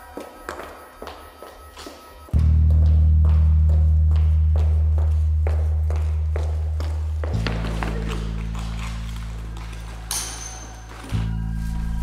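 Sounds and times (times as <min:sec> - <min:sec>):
low background music: 0:00.0 - 0:12.0
heeled shoes on concrete: 0:00.2 - 0:11.2.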